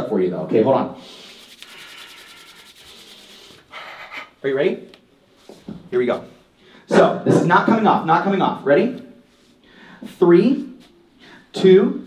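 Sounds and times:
palms rubbing together: 1.0 - 4.5.

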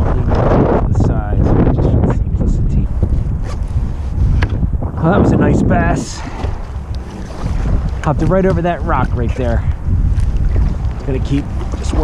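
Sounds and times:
water moving around kayak: 0.0 - 12.0
wind buffeting microphone: 0.0 - 12.0.

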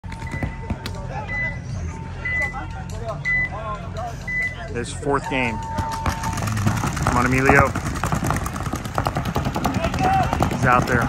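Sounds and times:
game timer beeping: 0.0 - 3.6.

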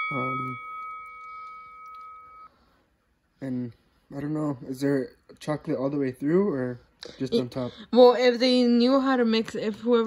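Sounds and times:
bell chime: 0.0 - 2.5.

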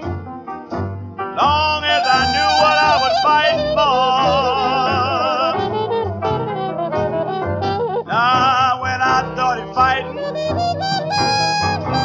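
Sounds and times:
jump blues band accompaniment: 0.0 - 12.0
blues singer holding vibrato note: 1.8 - 8.6, 9.6 - 12.0.

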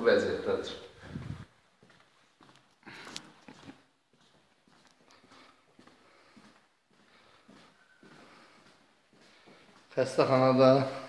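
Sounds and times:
footsteps on hard floor: 1.1 - 10.0.

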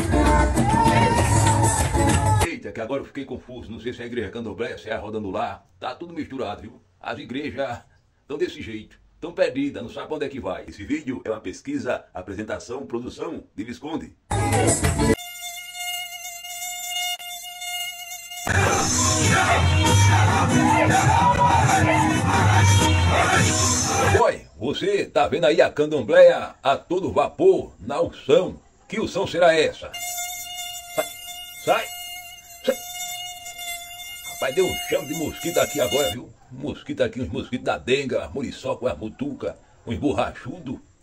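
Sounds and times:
mosquito buzzing: 15.1 - 24.2, 30.0 - 36.2
worship music with singing: 18.5 - 24.2.

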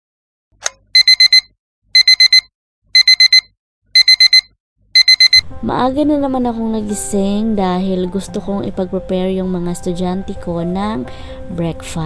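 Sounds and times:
short click: 0.6 - 0.8
digital alarm clock beeping: 0.9 - 5.5.

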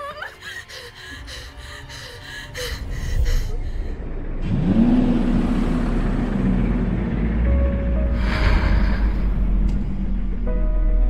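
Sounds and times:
woman panting: 0.0 - 4.0
low rumble: 1.4 - 11.0.

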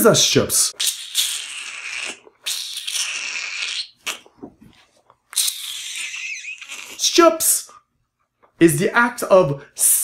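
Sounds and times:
man sucking air through teeth: 0.8 - 4.6, 5.3 - 7.0.

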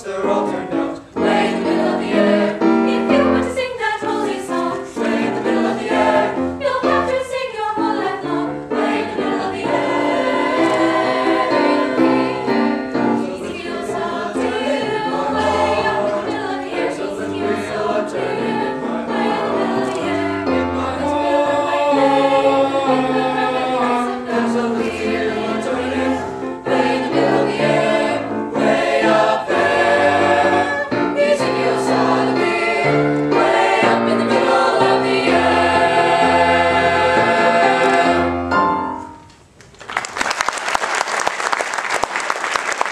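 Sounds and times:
mixed choir singing: 0.0 - 38.6
piano accompaniment: 0.0 - 39.5.

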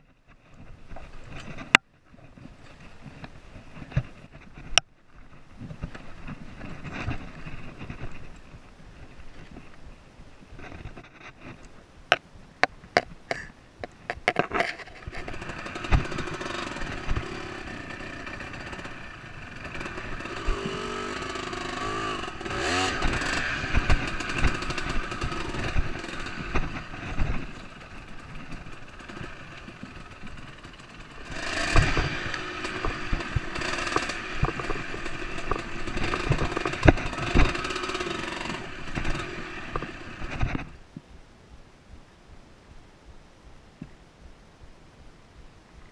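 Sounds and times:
dirt bike engine revving: 15.0 - 40.8
knocks and clatters from bike: 28.4 - 40.7.

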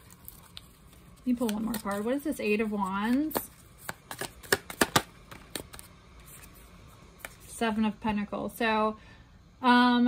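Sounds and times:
cards clicking in hands: 3.2 - 5.9.

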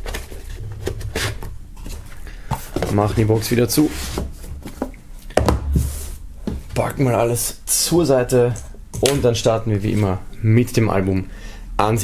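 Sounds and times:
cardboard rubbing and scraping: 0.0 - 2.1, 2.8 - 4.9.

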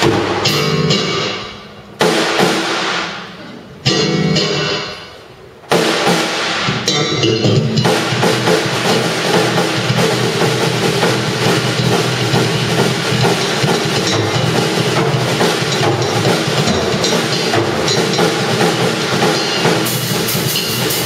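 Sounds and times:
drum kit playing: 0.0 - 21.0
electric bass guitar: 0.3 - 1.5, 3.8 - 5.1, 6.8 - 7.9.

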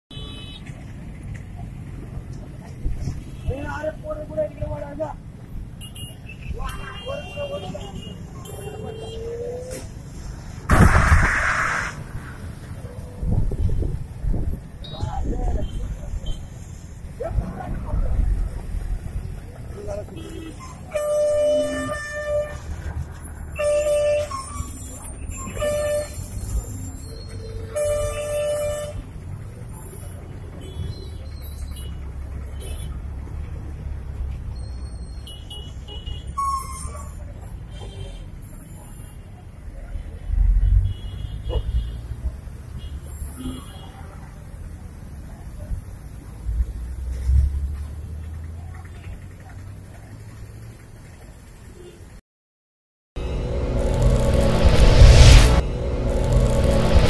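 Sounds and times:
road traffic rumble: 0.1 - 52.2, 53.2 - 57.0
vehicle horn: 20.2 - 22.8, 23.6 - 26.4, 27.6 - 29.0
high-pitched tone: 53.2 - 57.0.

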